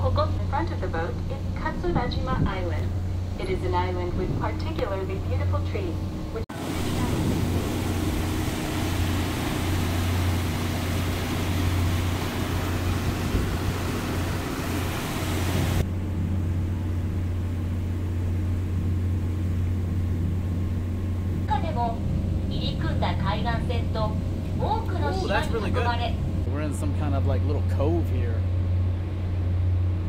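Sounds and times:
boat engine droning: 0.0s - 30.0s
wind and churning water rushing: 0.0s - 30.0s.

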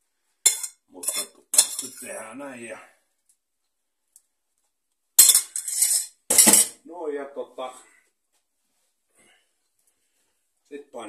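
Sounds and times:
metal pan clattering: 0.5s - 2.0s, 5.2s - 6.8s.

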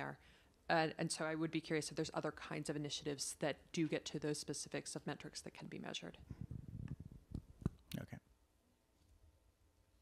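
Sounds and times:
microphone handling noise: 6.2s - 8.1s.

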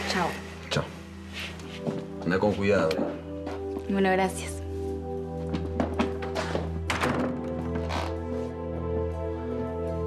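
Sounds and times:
soft background music: 0.0s - 10.0s
wooden door shutting: 5.8s - 8.2s.

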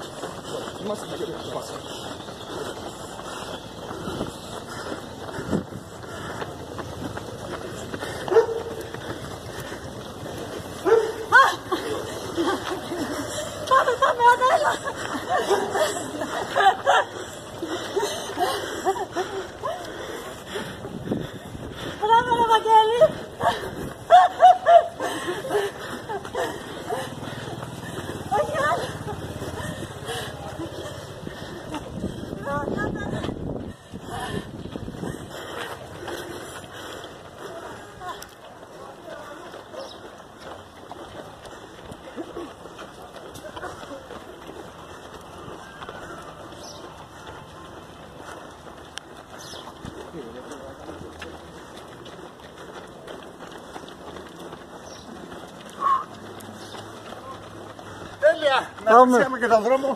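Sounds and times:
street ambience: 0.0s - 59.9s
bird calls: 44.8s - 48.5s, 49.2s - 50.0s, 54.7s - 58.1s.

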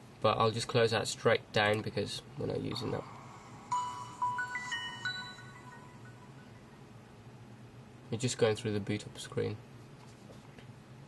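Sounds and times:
phone start-up chime: 3.0s - 6.8s.

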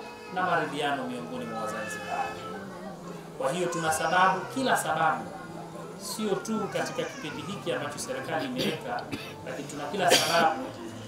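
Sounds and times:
man speaking into a microphone: 0.3s - 2.4s, 3.4s - 5.3s, 6.0s - 10.8s.

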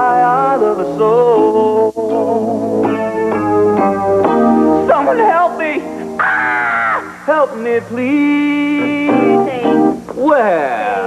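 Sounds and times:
man singing a ballad: 0.0s - 2.6s, 7.3s - 9.5s
electric piano chords: 1.2s - 6.2s, 7.2s - 10.2s.

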